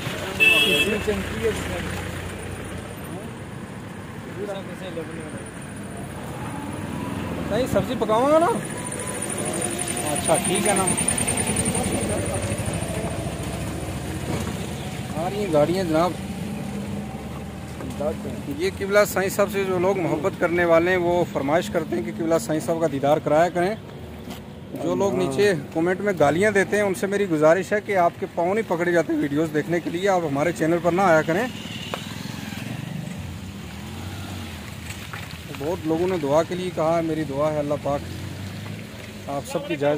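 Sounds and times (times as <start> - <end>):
car engine rumbling: 0.0 - 39.9.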